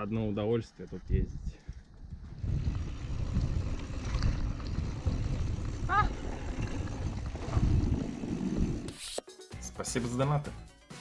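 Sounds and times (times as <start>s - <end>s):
wind buffeting microphone: 0.8s - 8.9s
bike tyres rumbling on dirt: 1.6s - 8.9s.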